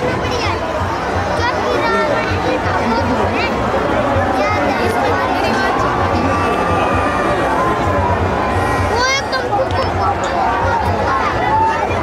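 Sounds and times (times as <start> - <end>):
crowd voices and calls: 0.0 - 12.0.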